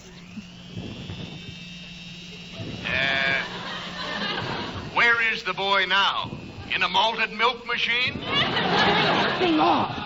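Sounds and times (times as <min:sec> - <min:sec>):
electric mixer whine: 0:00.0 - 0:10.0
low hum: 0:00.0 - 0:10.0.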